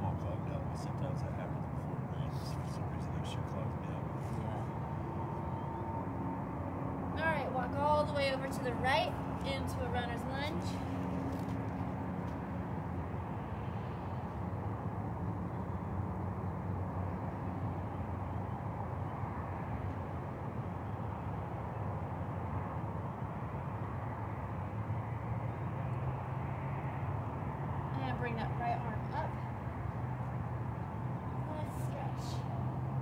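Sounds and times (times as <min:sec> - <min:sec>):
low engine hum: 0:00.0 - 0:33.0
traffic: 0:00.0 - 0:33.0.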